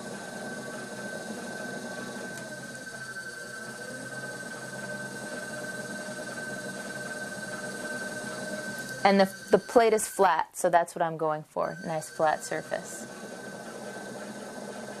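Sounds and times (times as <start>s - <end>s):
high-pitched whine: 0.0s - 10.4s, 11.7s - 15.0s
pottery wheel running: 0.0s - 15.0s.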